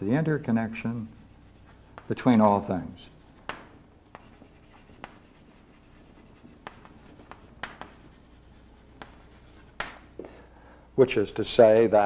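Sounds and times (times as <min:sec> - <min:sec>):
chalk scratching on blackboard: 0:00.5 - 0:09.9
chalk tapping on board: 0:00.8 - 0:10.0.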